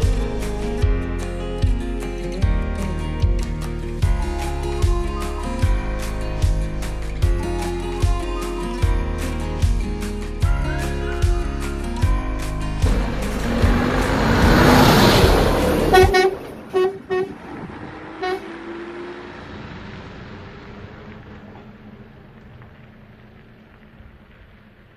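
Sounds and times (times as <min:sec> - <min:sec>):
background music: 0:00.0 - 0:16.4
vehicle engine pulling away: 0:12.4 - 0:24.9
vehicle horn toots: 0:15.8 - 0:17.4, 0:18.2 - 0:18.5.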